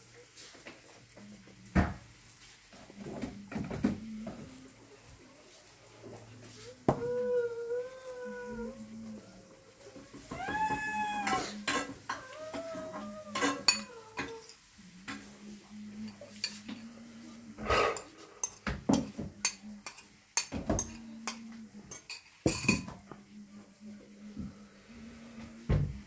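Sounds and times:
bowl and plate clinking: 0:11.2 - 0:15.2.

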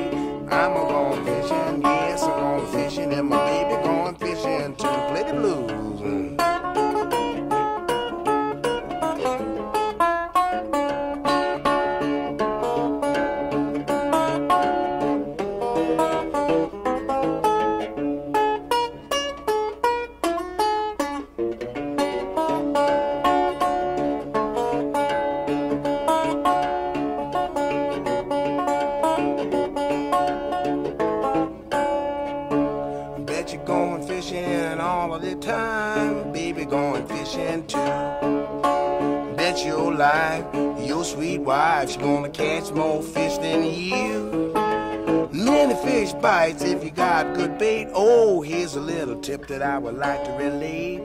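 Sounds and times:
plucked string instruments: 0:00.0 - 0:51.0.

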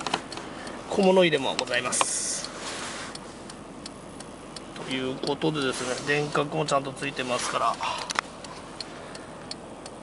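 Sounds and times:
light even ticking in car: 0:00.0 - 0:10.0.

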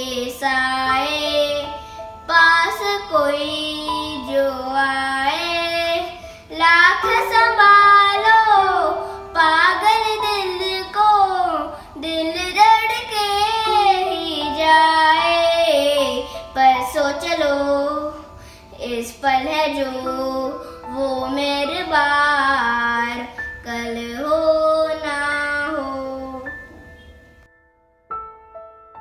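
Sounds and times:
boy singing into microphone: 0:00.0 - 0:18.2, 0:18.8 - 0:26.9.

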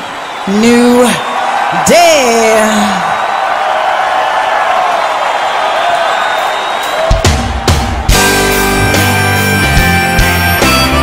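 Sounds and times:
crowd cheering and applauding: 0:00.0 - 0:11.0.

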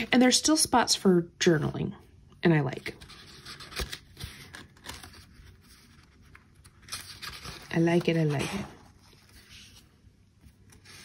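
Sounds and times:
paper rustling and scraping: 0:02.8 - 0:11.0.

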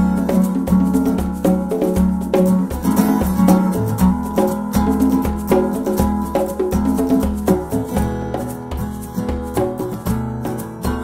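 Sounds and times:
acoustic guitar playing chords: 0:00.0 - 0:11.0
conga rhythm: 0:00.0 - 0:11.0
hand percussion: 0:00.0 - 0:11.0.

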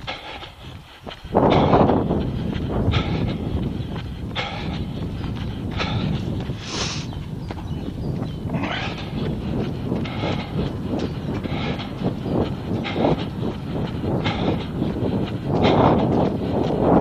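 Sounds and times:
footsteps on wet pavement: 0:00.0 - 0:17.0
hard breathing: 0:00.0 - 0:17.0.

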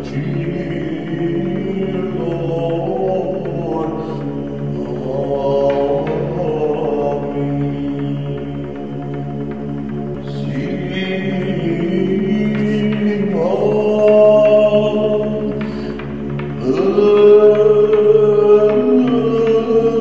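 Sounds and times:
man chanting slow melody: 0:00.0 - 0:09.5, 0:10.1 - 0:20.0
held vocal drone: 0:00.0 - 0:20.0.

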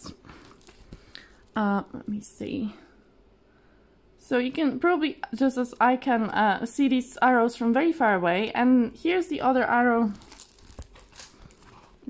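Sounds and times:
canvas crinkling: 0:10.1 - 0:12.0.

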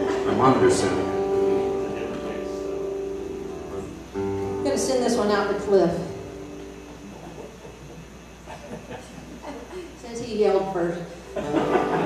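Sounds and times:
acoustic guitar chords: 0:00.0 - 0:09.0, 0:10.6 - 0:12.0.

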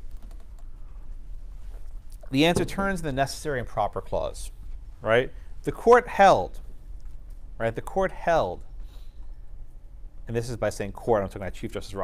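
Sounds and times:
laptop keyboard typing: 0:00.0 - 0:00.8
low room hum: 0:00.0 - 0:12.0.

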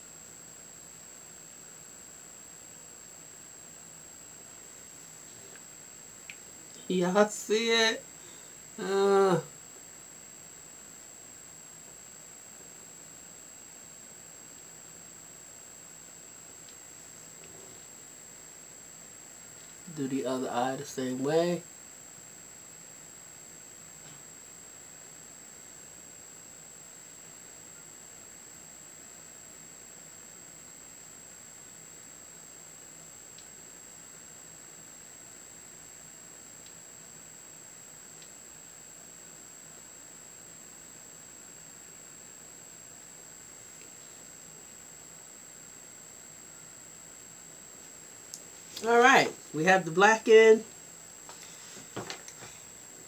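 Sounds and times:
low hiss: 0:00.0 - 0:53.0
high-pitched whine: 0:04.1 - 0:09.6, 0:48.8 - 0:53.0
woman's voice: 0:06.9 - 0:08.0, 0:48.8 - 0:50.7
faint ticks: 0:48.3 - 0:48.8.

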